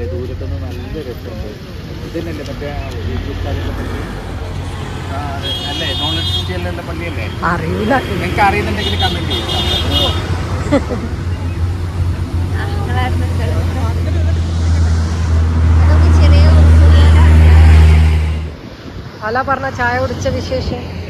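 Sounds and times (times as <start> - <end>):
vehicle engine droning: 0.0 - 18.7
voices talking: 0.0 - 21.0.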